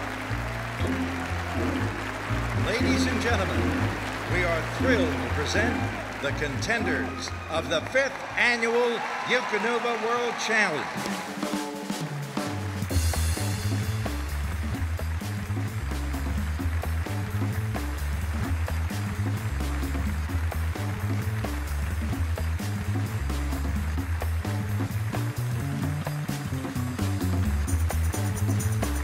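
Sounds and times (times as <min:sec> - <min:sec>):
music with heavy bass and beat: 0:11.4 - 0:29.0.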